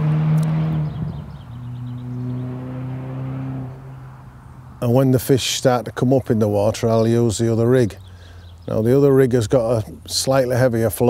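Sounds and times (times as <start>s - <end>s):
vehicle engine humming: 0.0s - 11.0s.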